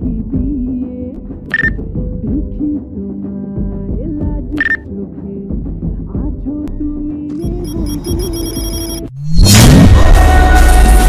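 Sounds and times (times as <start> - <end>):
film song: 0.4 - 9.1, 9.8 - 11.0
high ringing ringtone-like pattern: 7.4 - 9.1.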